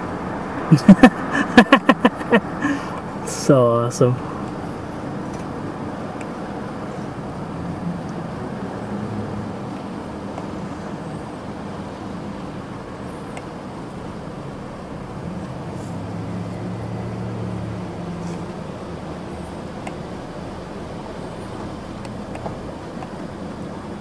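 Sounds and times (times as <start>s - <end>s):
car engine running: 0.0s - 24.0s
street traffic noise: 0.0s - 24.0s.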